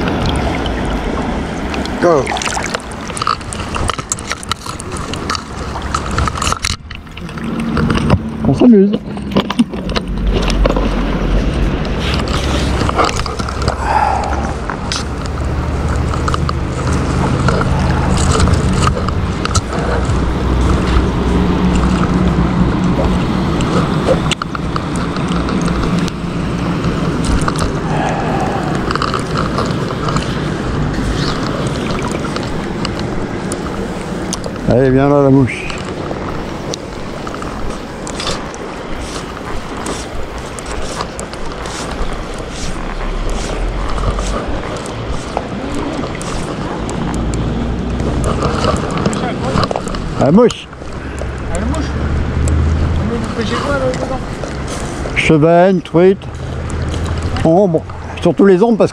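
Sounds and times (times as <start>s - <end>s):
river water rushing: 0.0s - 58.9s
wind rumbling on microphone: 0.0s - 58.9s.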